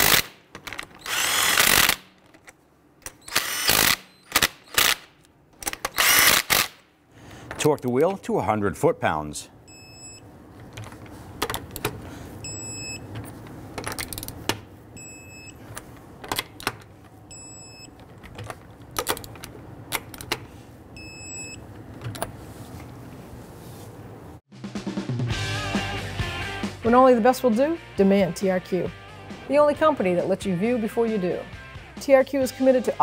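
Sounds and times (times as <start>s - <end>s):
torque wrench clicking: 1.0s - 2.1s, 3.0s - 6.8s
quiet background music: 25.6s - 33.0s.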